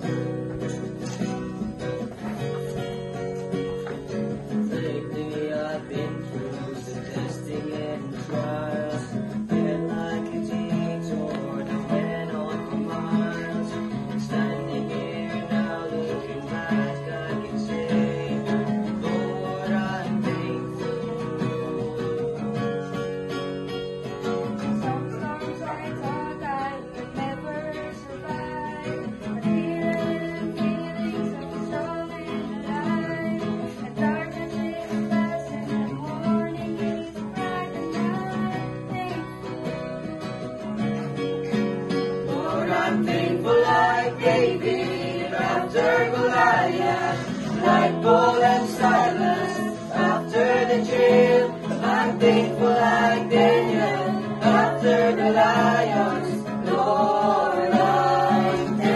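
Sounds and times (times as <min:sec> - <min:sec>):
acoustic guitar strumming chords: 0:00.0 - 0:58.9.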